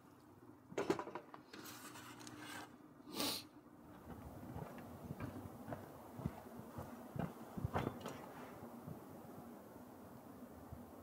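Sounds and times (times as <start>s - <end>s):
soft footsteps on dirt: 4.0s - 9.0s.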